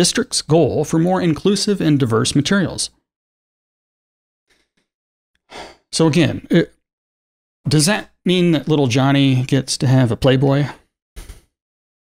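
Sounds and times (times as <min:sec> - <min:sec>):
man speaking: 0:00.0 - 0:03.0, 0:05.9 - 0:06.8, 0:07.7 - 0:10.8
man breathing: 0:05.5 - 0:05.9.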